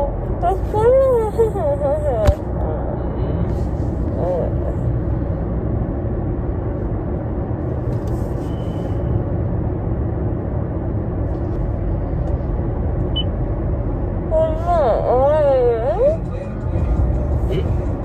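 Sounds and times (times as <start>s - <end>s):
car cabin road rumble: 0.0s - 18.0s.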